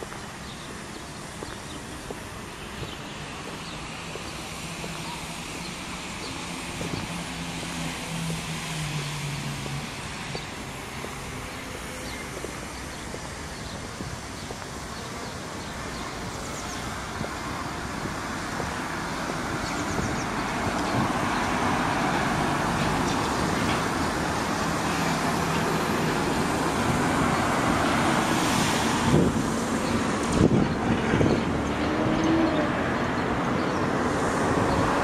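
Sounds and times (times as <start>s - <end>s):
vehicles passing: 0.0s - 35.0s.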